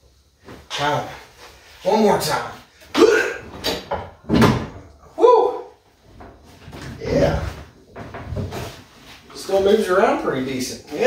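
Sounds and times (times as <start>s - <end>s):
man grunting: 2.9s - 3.6s, 5.0s - 5.8s, 7.0s - 7.6s
deep thud: 3.7s - 4.8s.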